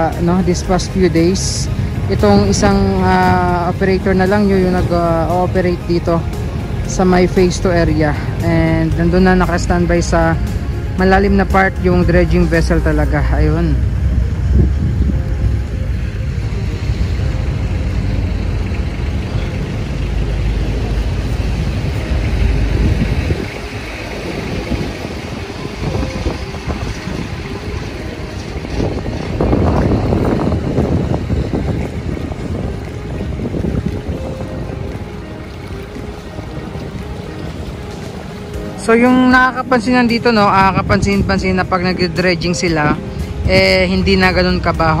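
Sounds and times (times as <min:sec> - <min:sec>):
low rumble: 0:00.0 - 0:45.0.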